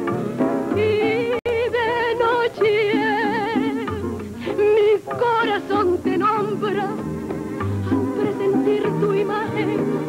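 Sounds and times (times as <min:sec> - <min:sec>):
woman singing with vibrato: 0:00.7 - 0:10.0.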